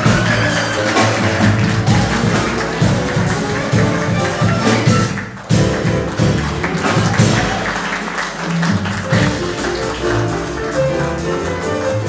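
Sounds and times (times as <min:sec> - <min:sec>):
double bass: 0:00.0 - 0:12.0
drums: 0:00.0 - 0:12.0
grand piano: 0:00.0 - 0:12.0.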